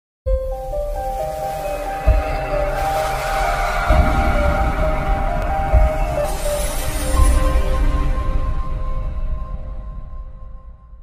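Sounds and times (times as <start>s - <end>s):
sustained music tones: 0.3s - 10.8s
whoosh: 1.0s - 8.6s.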